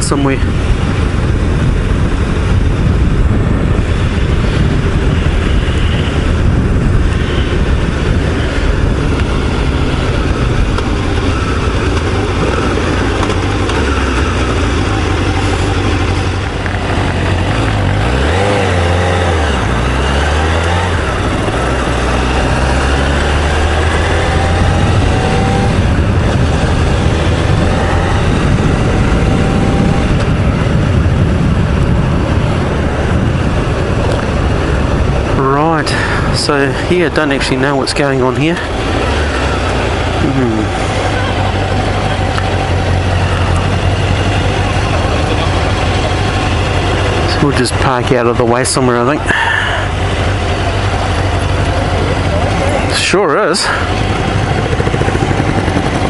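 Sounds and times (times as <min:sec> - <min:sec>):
motorcycle engine running: 0:00.0 - 0:56.0
wind rush on microphone: 0:00.0 - 0:56.0.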